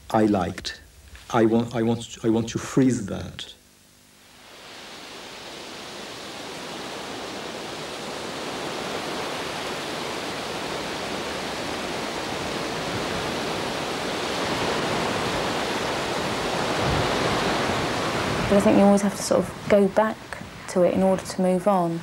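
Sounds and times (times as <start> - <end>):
sea surf washing onto beach: 4.4 - 22.0.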